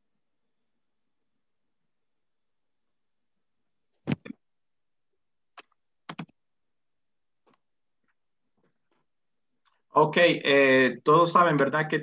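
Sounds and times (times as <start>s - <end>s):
computer mouse clicks: 5.6s - 6.4s.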